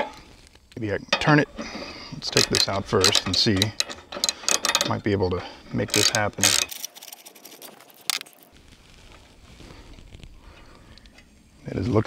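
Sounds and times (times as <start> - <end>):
hand tool clicking and rattling: 1.1 - 5.2, 5.8 - 8.4.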